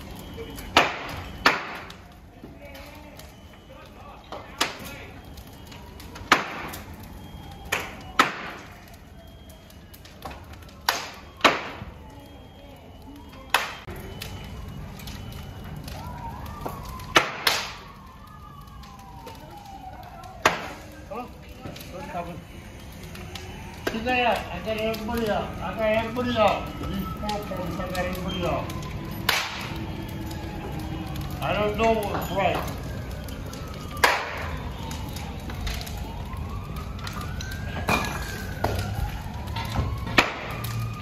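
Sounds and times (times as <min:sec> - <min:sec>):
fire popping and cracking: 0:00.0 - 0:41.0
fire rushing: 0:00.0 - 0:41.0.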